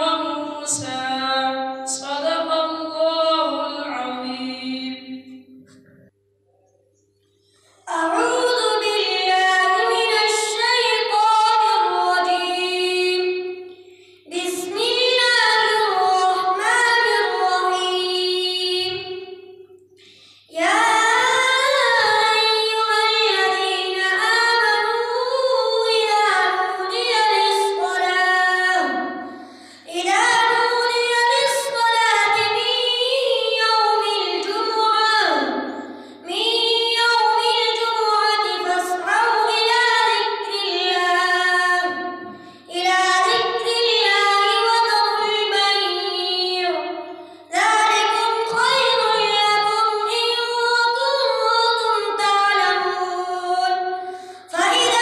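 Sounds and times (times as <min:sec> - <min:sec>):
boy reciting melodically: 0:00.0 - 0:05.9, 0:07.9 - 0:19.6, 0:20.4 - 0:55.0.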